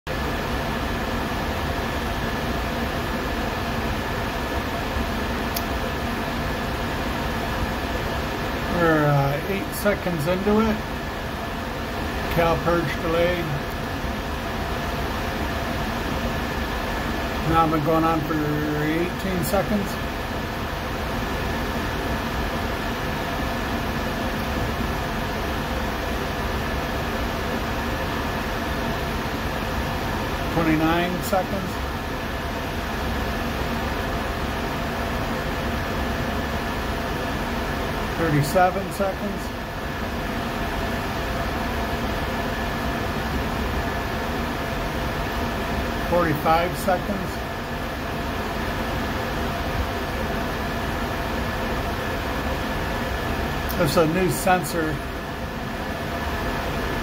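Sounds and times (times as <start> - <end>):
faint constant whine: 0.1 - 57.0
ventilation fan hum and hiss: 0.1 - 57.0.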